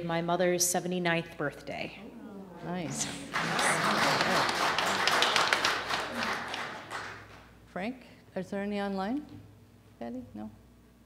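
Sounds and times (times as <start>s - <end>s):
congregation applauding: 2.9s - 7.5s.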